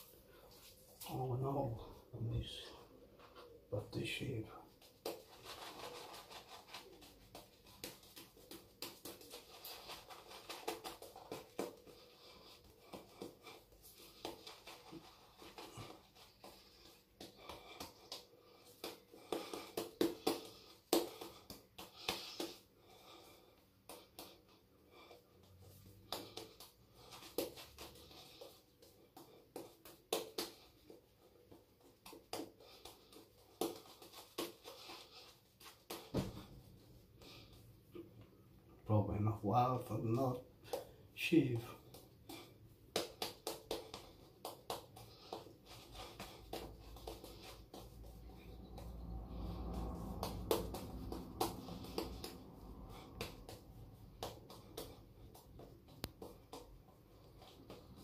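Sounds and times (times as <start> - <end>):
wet shaving brush swishing: 5.1 - 17.8.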